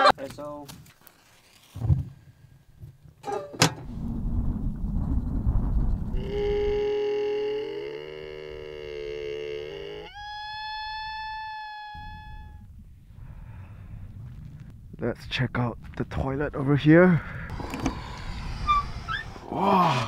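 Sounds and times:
wind rumble on microphone: 3.8s - 7.0s, 10.6s - 20.0s
camel moaning call: 6.1s - 12.6s.

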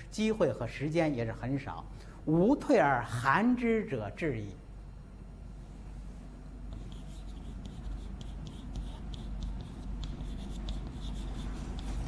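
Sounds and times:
chalk tapping and scratching: 6.7s - 12.0s.

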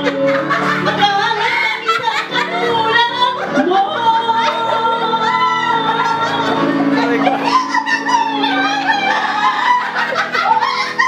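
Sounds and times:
keyboard: 0.0s - 11.0s
laughter: 0.0s - 11.0s
woman singing into microphone: 0.0s - 11.0s.

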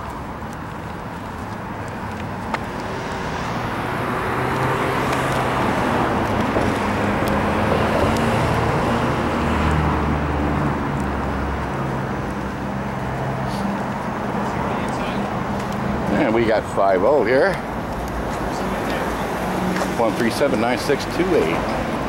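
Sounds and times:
car engine passing close: 0.0s - 22.0s
street traffic: 0.0s - 22.0s.

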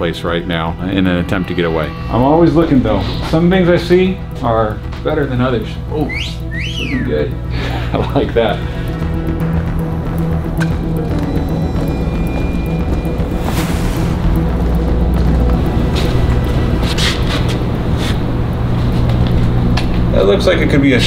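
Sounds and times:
background music with low bass: 0.0s - 21.0s.

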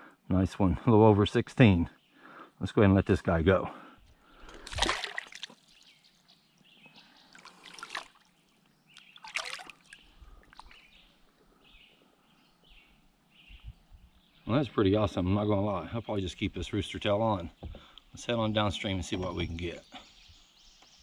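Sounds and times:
water splashing and trickling: 4.4s - 11.2s.

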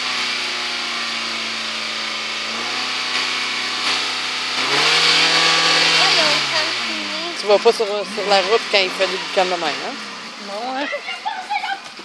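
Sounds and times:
car engine running at raised revs: 0.0s - 12.0s.

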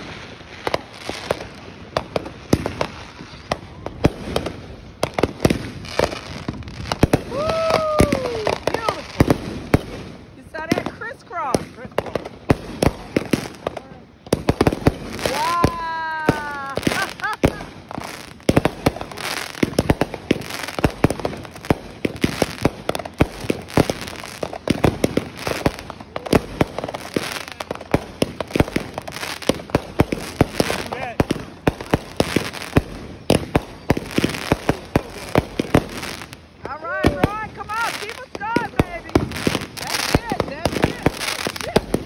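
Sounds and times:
fireworks bangs and crackling: 0.0s - 42.0s.

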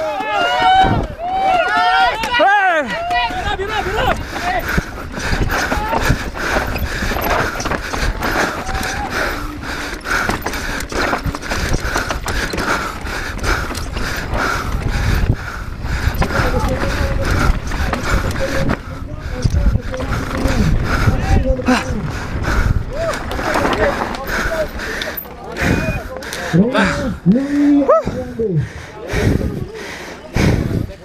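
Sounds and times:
bike frame and suspension rattle: 0.0s - 27.2s
wind rumbling on microphone: 0.7s - 1.3s, 3.0s - 25.0s, 29.1s - 29.7s, 30.4s - 31.0s
tyres on loose gravel: 1.4s - 27.0s.

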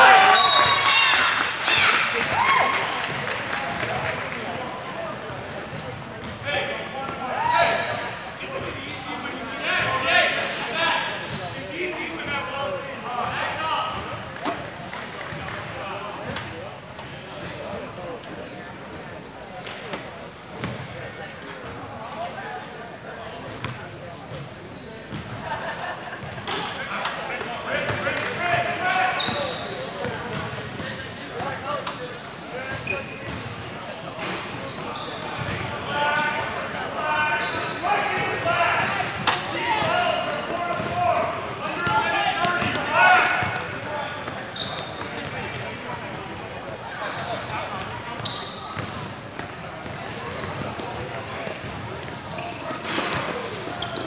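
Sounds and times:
sneakers squeaking on floor: 0.3s - 2.0s, 5.0s - 12.4s, 13.8s - 18.0s, 18.9s - 22.6s, 23.2s - 54.0s.

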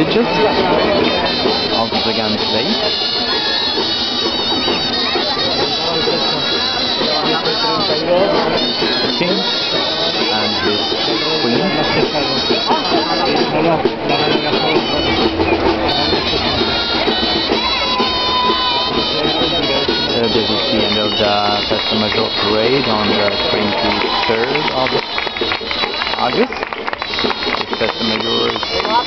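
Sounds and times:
reedy wind instruments playing: 0.0s - 29.0s
street crowd noise: 0.0s - 29.0s.

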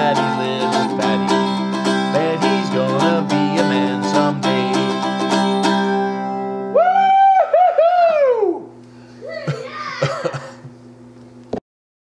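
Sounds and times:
steady low hum: 0.0s - 11.6s.

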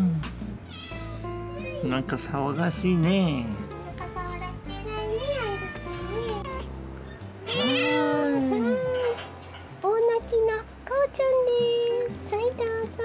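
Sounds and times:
cat meowing: 0.6s - 1.8s, 5.2s - 9.3s.

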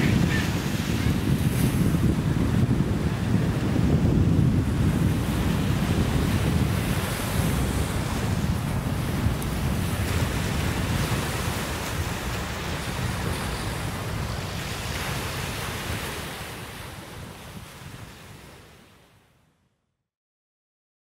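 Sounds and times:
wind rumbling on microphone: 0.0s - 18.8s
small waves washing in: 0.0s - 19.1s.

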